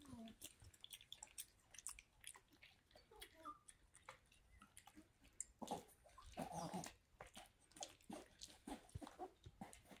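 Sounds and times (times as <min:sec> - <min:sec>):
dog chewing and licking: 0:00.0 - 0:10.0.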